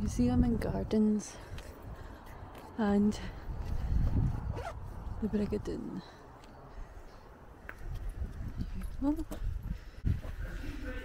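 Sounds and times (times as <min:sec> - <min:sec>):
footsteps on paved path: 0:01.2 - 0:10.3.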